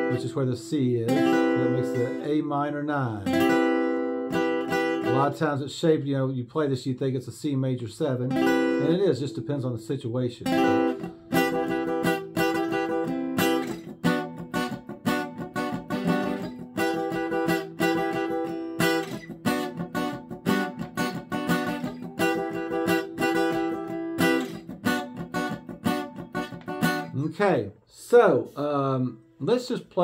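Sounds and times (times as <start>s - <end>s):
acoustic guitar strummed in chords: 0.0s - 5.5s, 8.3s - 27.2s.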